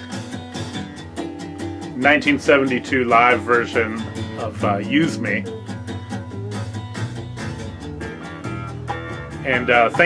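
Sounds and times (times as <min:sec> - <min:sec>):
bass line: 0:00.0 - 0:10.0
drums: 0:00.0 - 0:10.0
guitar: 0:00.0 - 0:10.0.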